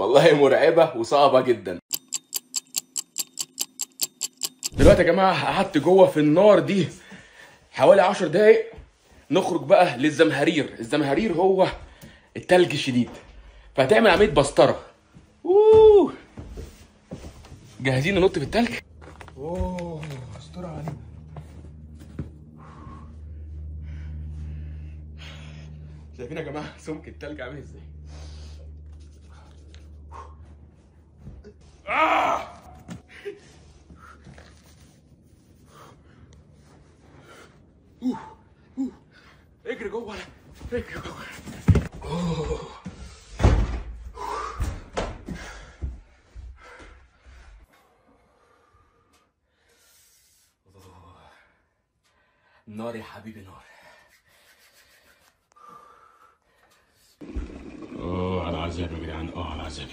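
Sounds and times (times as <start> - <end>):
man crying out: 15.4 - 16.2
man exclaiming: 15.4 - 16.2.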